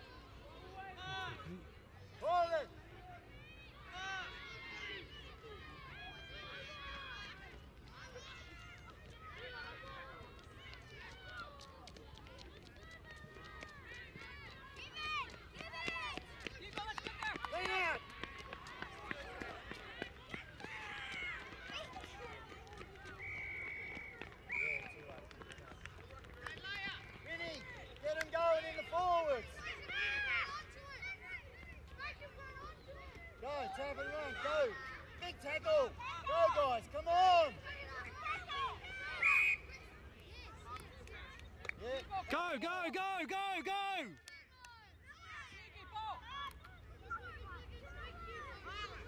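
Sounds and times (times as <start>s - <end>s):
people shouting and calling: 41.8s - 44.2s.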